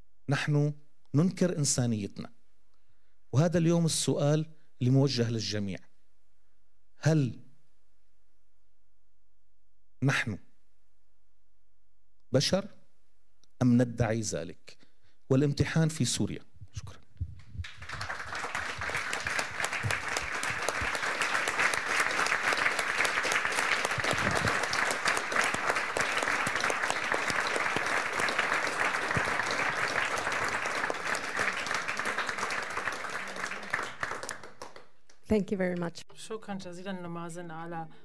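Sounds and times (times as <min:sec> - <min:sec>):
audience applauding: 0:17.6 - 0:35.0.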